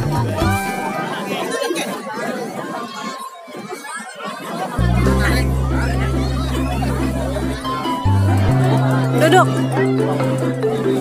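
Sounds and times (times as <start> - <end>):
indistinct voices chattering: 0.0 - 11.0.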